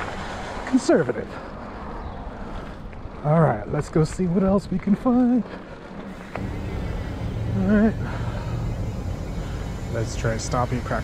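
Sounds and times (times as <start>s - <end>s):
bike tyres rumbling on road: 6.0s - 11.0s.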